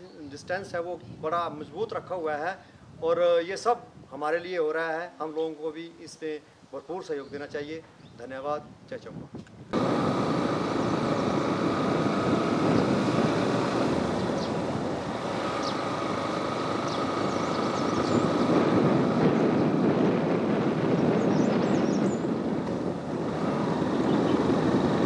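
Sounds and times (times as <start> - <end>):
vehicle engine and road noise: 9.5 - 25.0
faint steady whine: 9.8 - 19.3.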